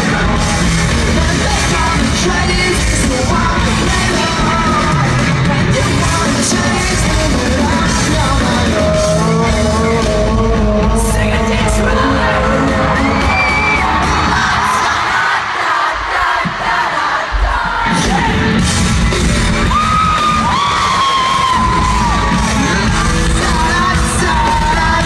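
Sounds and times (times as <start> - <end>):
live rock band playing: 0.0 - 15.2, 17.5 - 25.0
sung vocals: 0.0 - 18.8, 19.6 - 25.0.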